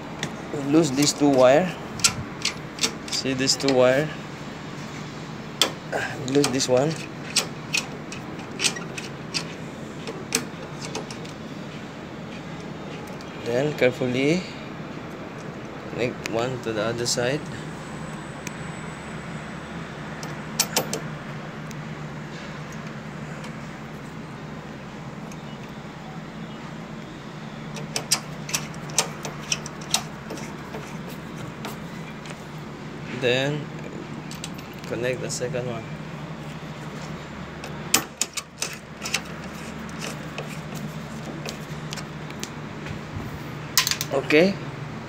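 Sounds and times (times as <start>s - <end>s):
low machinery hum: 0.0s - 45.0s
sharp metallic clicks: 1.0s - 3.8s, 5.6s - 11.4s, 20.2s - 21.1s, 27.7s - 32.4s, 37.6s - 42.6s.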